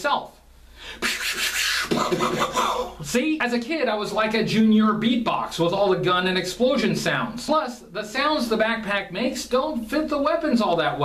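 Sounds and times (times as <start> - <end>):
man making mouth sound effects: 0.9 - 3.1.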